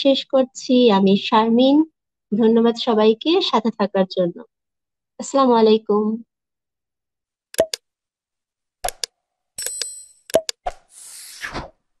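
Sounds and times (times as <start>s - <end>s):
bell-like ding: 9.6s - 10.2s.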